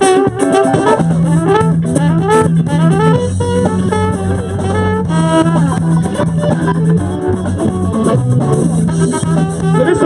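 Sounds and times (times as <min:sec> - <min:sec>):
bass guitar: 0:00.0 - 0:10.0
drum kit: 0:00.0 - 0:10.0
electric guitar: 0:00.0 - 0:10.0
trumpet: 0:00.0 - 0:10.0.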